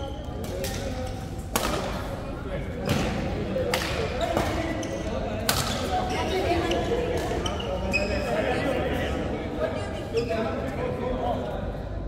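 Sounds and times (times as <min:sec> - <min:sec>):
racket hitting shuttlecock: 0:01.5 - 0:02.0.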